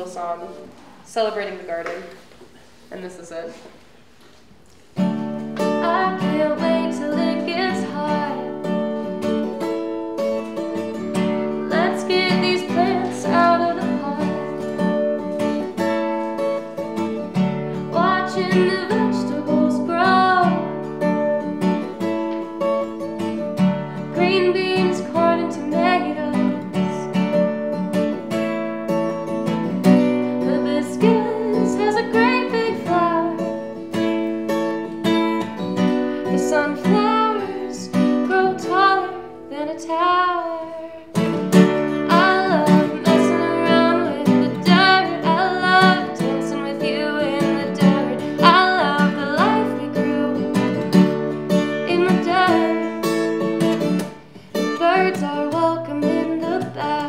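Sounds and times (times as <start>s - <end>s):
acoustic guitar strumming: 4.8s - 57.0s
woman singing: 5.6s - 9.7s, 10.8s - 15.6s, 17.7s - 21.4s, 23.9s - 27.4s, 30.0s - 33.8s, 34.8s - 53.4s, 54.6s - 57.0s.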